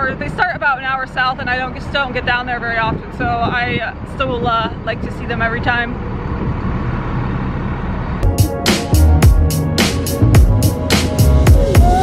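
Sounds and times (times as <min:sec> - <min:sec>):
faint engine hum: 0:00.0 - 0:10.9
traffic rumble: 0:00.0 - 0:12.0.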